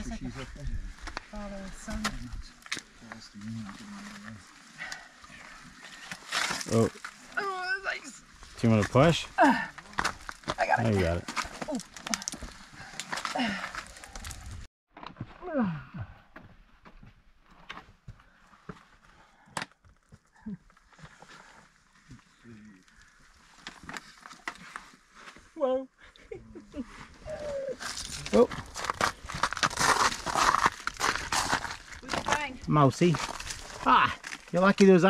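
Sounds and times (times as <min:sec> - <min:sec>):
footsteps scuffing on rock and ice: 0:27.8 - 0:34.5.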